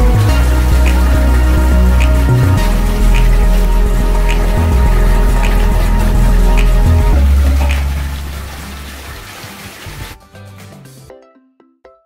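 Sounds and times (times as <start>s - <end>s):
water rushing: 0.0s - 10.2s.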